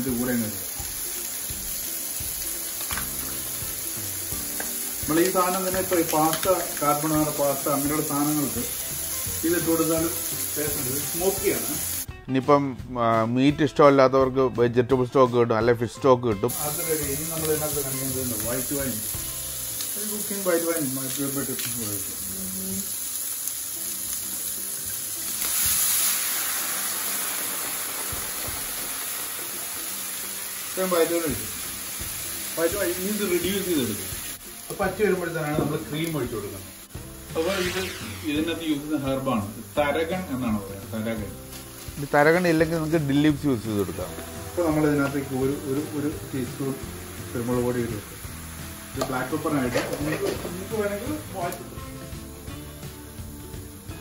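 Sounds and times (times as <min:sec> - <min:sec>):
food sizzling in frying pan: 0:00.0 - 0:12.2, 0:16.5 - 0:54.0.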